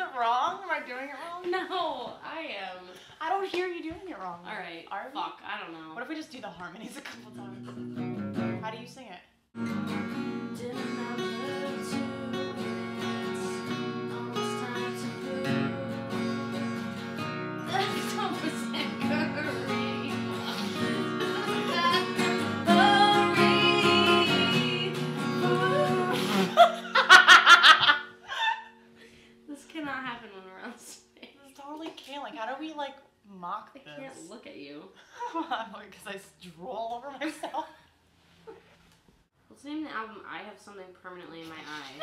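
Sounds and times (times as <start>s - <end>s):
acoustic guitars strumming: 7.1s - 8.6s, 9.6s - 28.2s
women singing harmony: 10.5s - 16.6s, 17.7s - 26.8s
women laughing: 17.8s - 22.3s, 26.1s - 28.8s.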